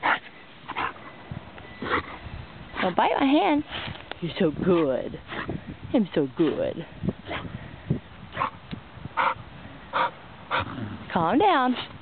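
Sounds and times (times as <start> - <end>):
dog breathy sounds: 9.2 - 11.1.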